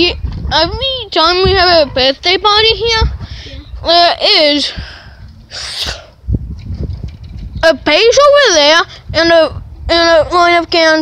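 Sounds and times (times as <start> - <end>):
low thumps: 0.2 - 8.3
person breathy burst of air: 4.7 - 6.2.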